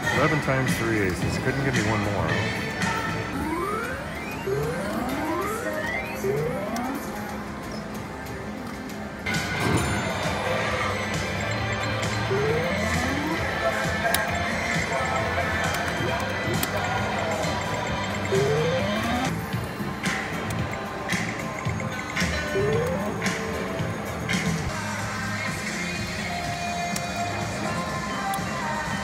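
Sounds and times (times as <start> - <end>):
casino background music: 0.0 - 29.0
short rising electronic tones: 3.4 - 7.2, 12.2 - 13.6, 18.3 - 19.3.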